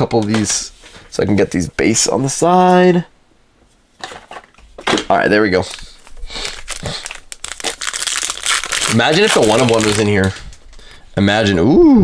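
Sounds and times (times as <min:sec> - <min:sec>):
foil wrapper crinkling and tearing: 0:05.6 - 0:10.6.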